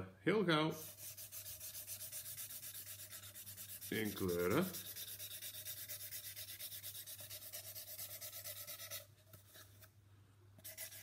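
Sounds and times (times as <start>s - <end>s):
marker scribbling on cardboard: 0.8s - 9.6s, 10.6s - 11.0s.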